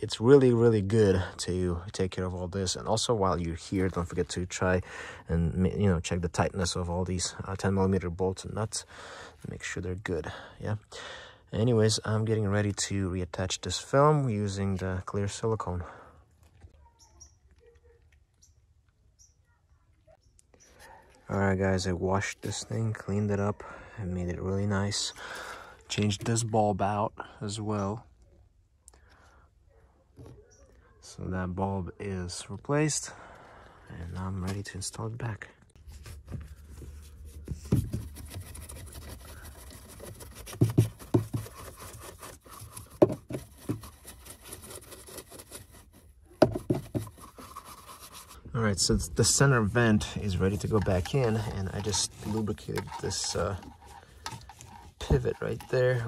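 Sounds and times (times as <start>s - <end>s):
faint high-pitched chirps: 16.8s - 20.9s
brush scrubbing plastic: 35.8s - 56.0s.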